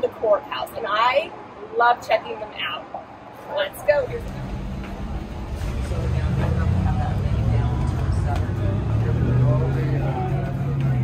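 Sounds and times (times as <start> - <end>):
steady low hum: 2.9 - 10.5
indistinct background voices: 3.3 - 11.0.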